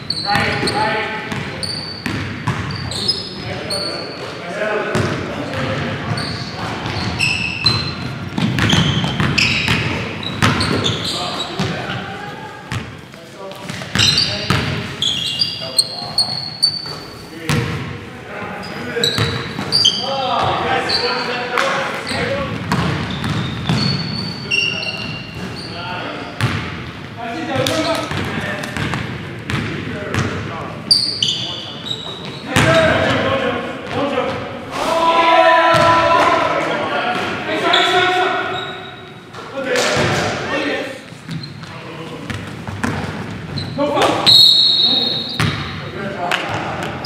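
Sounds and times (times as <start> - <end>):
sneakers squealing on floor: 0.0 - 36.4, 37.1 - 39.5, 41.0 - 47.0
players' voices: 0.0 - 47.0
basketball bouncing: 1.3 - 2.8, 6.8 - 11.0, 22.5 - 24.0, 26.4 - 26.8, 27.6 - 30.4, 42.3 - 43.6, 45.4 - 45.7
basketball bouncing on hardwood floor: 8.3 - 10.8, 22.5 - 24.0.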